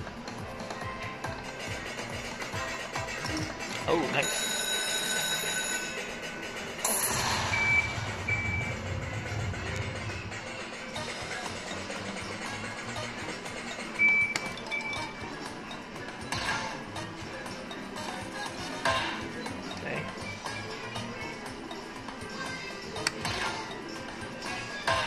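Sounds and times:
slot machine music: 2.8 - 22.0
loud burst: 6.9 - 10.6
short high beeps: 7.4 - 8.8.

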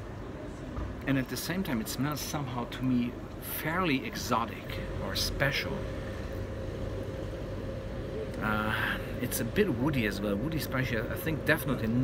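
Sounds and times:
faint constant tone: 0.0 - 12.0
low rumble of street traffic: 0.0 - 12.0.

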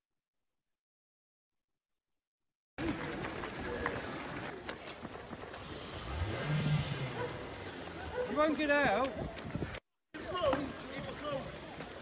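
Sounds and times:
street noise: 2.8 - 12.0
car engine revving: 5.6 - 8.0.

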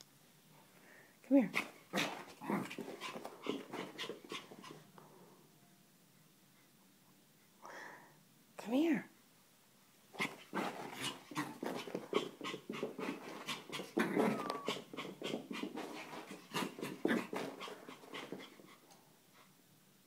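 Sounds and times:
dog panting and snuffling: 1.6 - 4.8, 10.2 - 19.6.

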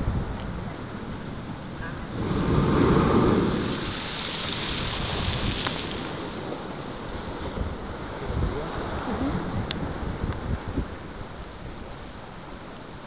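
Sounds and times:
blowhole rush of water and spray: 0.0 - 13.0
steady wind noise: 0.0 - 13.0.

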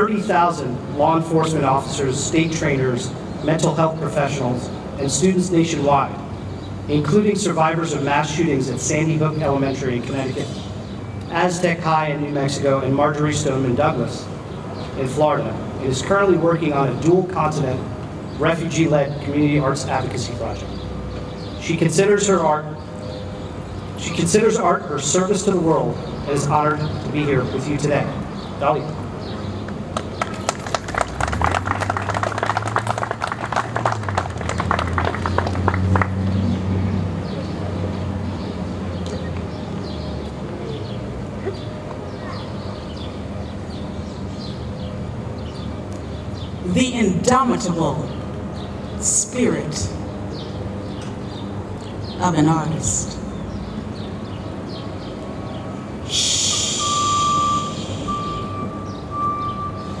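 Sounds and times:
audience applauding: 29.9 - 36.3
thin high tone: 56.1 - 60.0.

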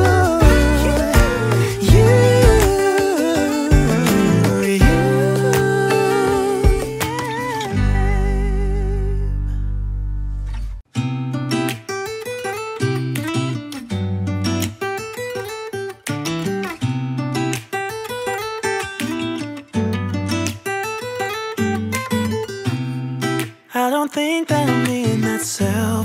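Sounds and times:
bass line: 0.0 - 7.0, 7.7 - 10.8
acoustic guitar strumming: 0.0 - 26.0.

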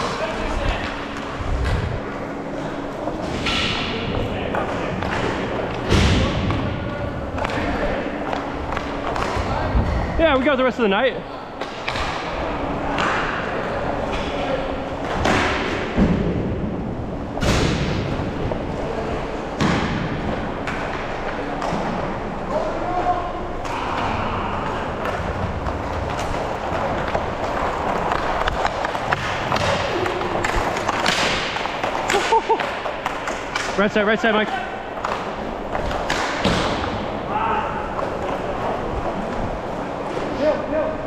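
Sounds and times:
sticks and puck clattering: 7.3 - 9.6, 19.6 - 40.4
skate wheels rolling: 11.6 - 41.0.

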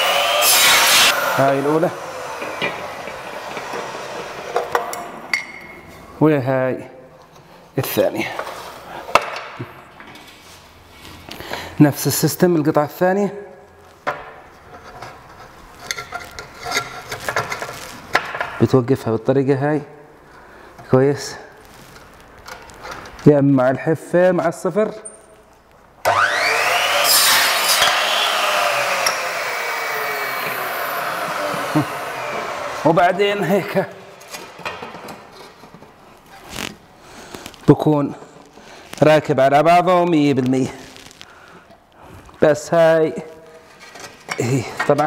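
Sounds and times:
miter saw cutting plaster: 0.0 - 4.7, 26.0 - 33.5.

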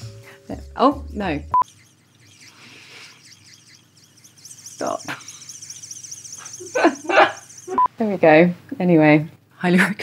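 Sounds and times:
eye massager pulsing buzz: 1.2 - 8.2.

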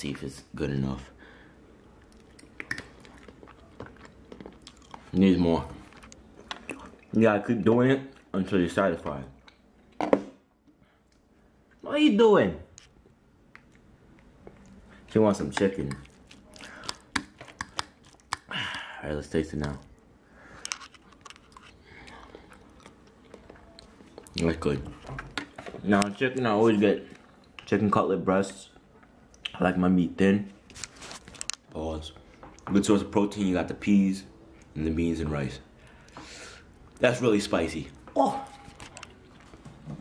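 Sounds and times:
person chewing: 1.9 - 7.1, 12.8 - 19.0, 19.6 - 25.5.

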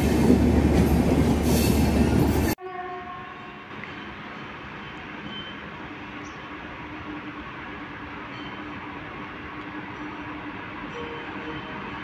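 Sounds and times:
distant electric locomotive: 0.0 - 12.0
passenger train rumbling past: 0.0 - 12.0
train horn: 2.6 - 3.7, 10.9 - 12.0.

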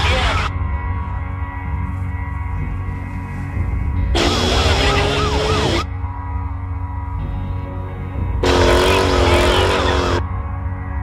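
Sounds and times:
background music with low pulse: 0.0 - 11.0
engine at high revs: 4.1 - 5.9, 8.4 - 10.2.

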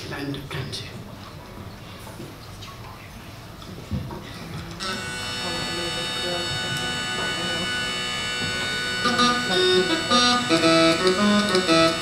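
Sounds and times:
bagpipe drones: 4.8 - 12.0
bagpipe melody: 4.8 - 12.0.

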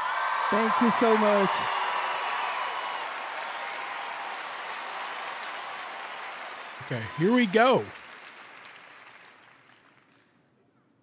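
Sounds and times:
audience applauding: 0.0 - 10.2.

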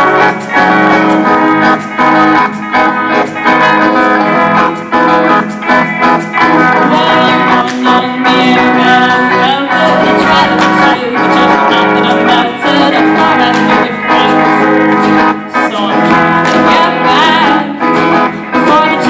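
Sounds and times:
guitars strumming pop song: 0.0 - 19.0.

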